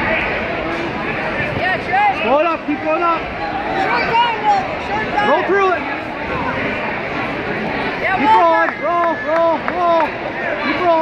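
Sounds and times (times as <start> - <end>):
crowd hubbub in a gym: 0.0 - 11.0.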